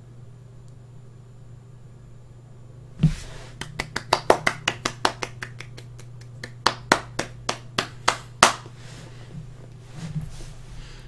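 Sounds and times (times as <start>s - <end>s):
steady low hum: 0.0s - 11.0s
person clapping hands: 3.5s - 8.8s.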